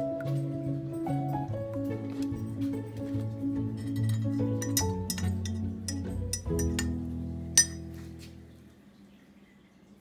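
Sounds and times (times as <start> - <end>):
spoon clinking in ceramic mug: 3.8 - 7.0, 7.6 - 7.9.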